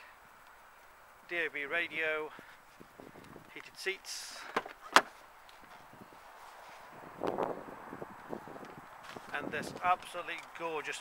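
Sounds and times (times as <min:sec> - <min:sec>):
light wind on microphone: 0:02.3 - 0:03.7, 0:05.7 - 0:10.2.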